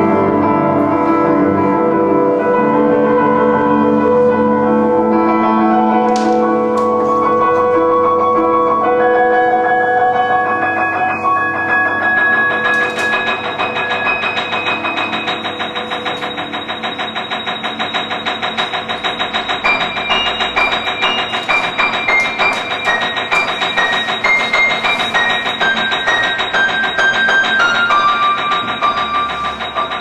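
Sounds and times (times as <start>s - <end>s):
piano music: 0.0s - 30.0s.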